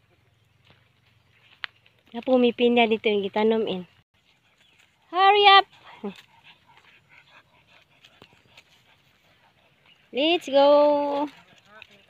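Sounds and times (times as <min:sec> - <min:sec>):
footsteps on dry leaves: 0:00.3 - 0:02.5.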